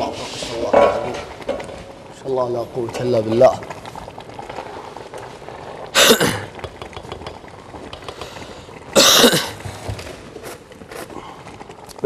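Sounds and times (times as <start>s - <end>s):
low steady background noise: 0.0s - 12.0s
person coughing: 6.0s - 6.5s, 9.0s - 9.6s.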